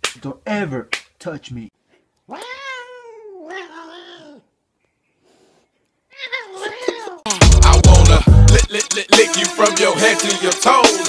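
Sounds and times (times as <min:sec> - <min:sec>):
cat meowing: 0:02.3 - 0:04.5, 0:06.1 - 0:07.3
hip-hop music with heavy bass: 0:07.3 - 0:11.0.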